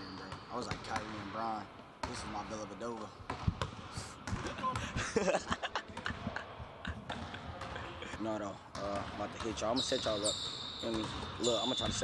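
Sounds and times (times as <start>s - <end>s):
basketball bouncing on hardwood floor: 3.3s - 4.6s, 7.1s - 7.8s.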